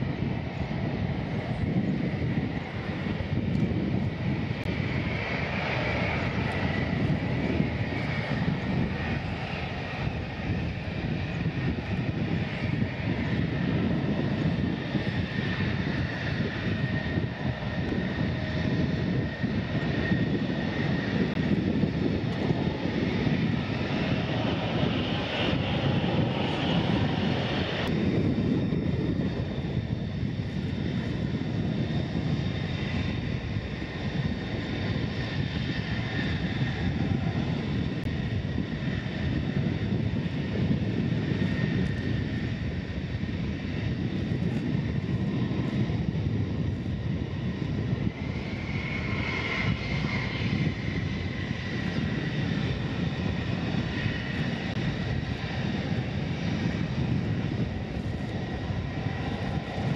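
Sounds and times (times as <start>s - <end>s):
jet engine whine and rumble: 0.0s - 59.9s.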